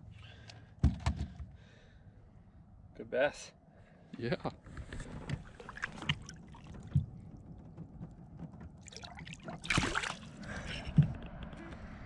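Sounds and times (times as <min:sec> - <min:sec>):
water splashing: 0:05.4 - 0:07.0, 0:08.8 - 0:10.6.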